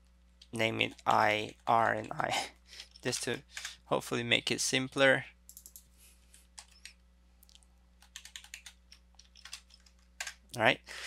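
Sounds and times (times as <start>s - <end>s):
keyboard typing: 0.4s - 3.7s, 5.5s - 5.9s, 6.5s - 7.0s, 8.0s - 10.4s.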